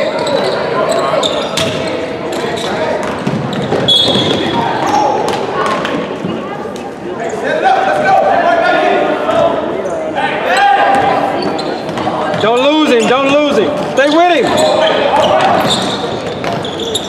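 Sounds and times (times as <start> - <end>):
spectators and players calling out: 0.0 - 17.0.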